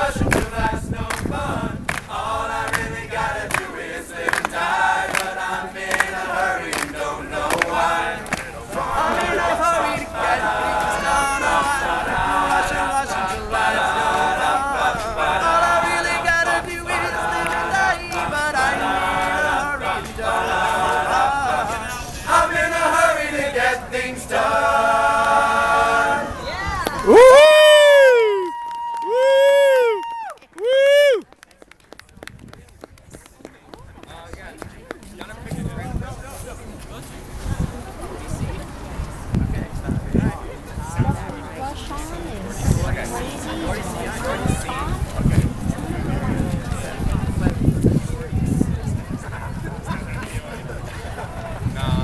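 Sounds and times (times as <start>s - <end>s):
male a cappella group singing: 0.0s - 26.4s.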